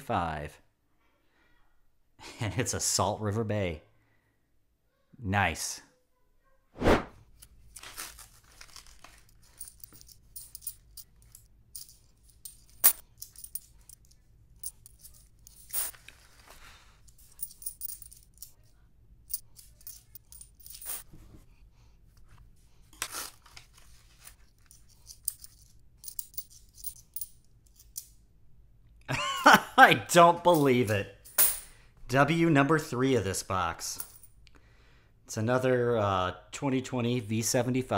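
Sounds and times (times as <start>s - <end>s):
coins clinking and sliding: 7.7s - 18.7s, 19.3s - 21.1s, 23.0s - 28.1s
paper wrappers tearing: 7.8s - 9.4s, 23.0s - 24.2s.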